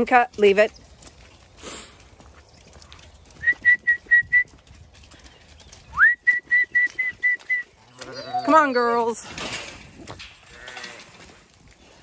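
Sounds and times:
high whistled pips: 3.4 - 4.5.

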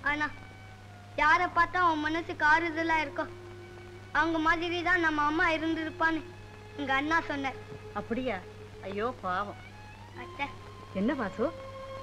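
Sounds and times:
boy speaking: 0.0 - 0.4, 1.2 - 3.3, 4.1 - 9.6, 10.2 - 10.6
background music tones: 0.0 - 12.0
woman speaking: 8.0 - 9.6.

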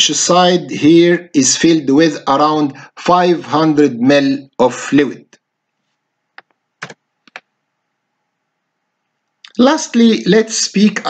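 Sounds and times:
computer key clicks: 6.4 - 7.5.

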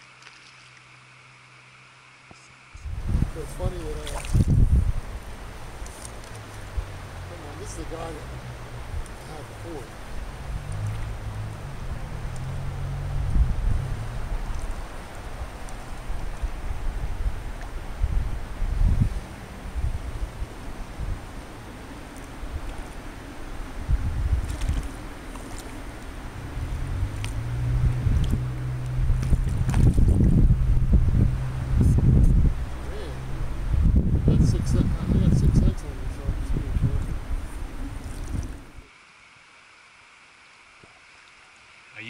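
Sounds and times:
wind buffeting microphone: 2.7 - 5.8, 6.4 - 38.9.

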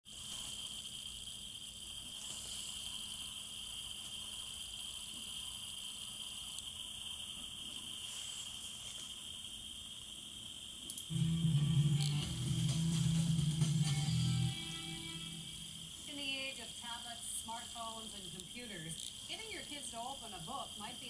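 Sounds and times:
steady hiss: 0.1 - 21.0
high even whine: 10.9 - 21.0.

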